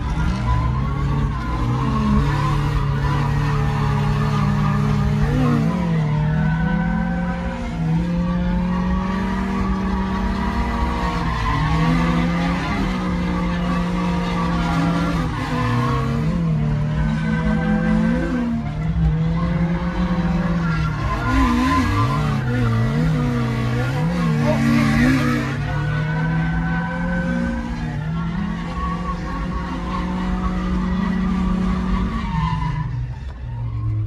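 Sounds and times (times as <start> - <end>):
car engine at high revs: 0.0 - 34.0
tires squealing: 0.0 - 34.0.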